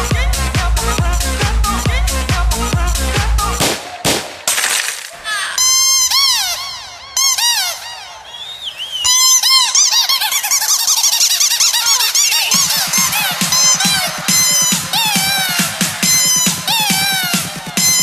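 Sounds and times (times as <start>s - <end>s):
pounding dance beat: 0.0s - 4.2s, 9.1s - 18.0s
squeaky chirping synth lead: 5.5s - 8.3s, 9.0s - 18.0s.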